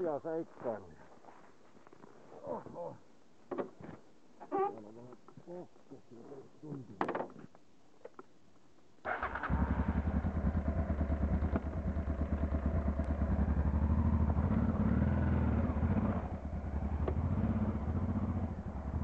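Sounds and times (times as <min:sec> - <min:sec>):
motorcycle engine revving: 0:09.1 - 0:19.0.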